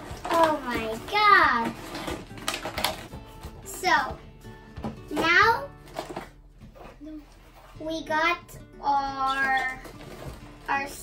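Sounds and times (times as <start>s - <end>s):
girl talking: 0.3s - 1.8s, 3.7s - 4.3s, 5.1s - 5.8s, 7.8s - 9.9s, 10.7s - 11.0s.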